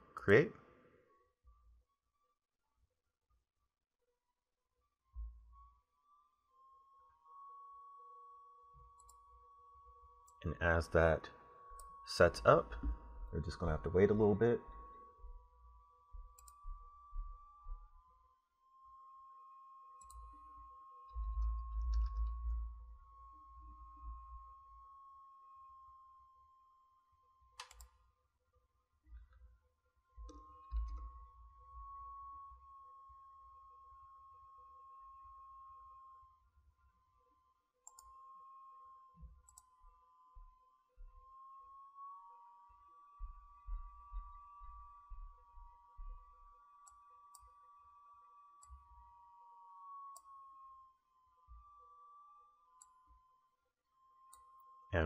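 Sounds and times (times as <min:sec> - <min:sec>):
thin steady whine: 0:04.8 - 0:55.0
steady high hum: 0:06.0 - 0:27.7.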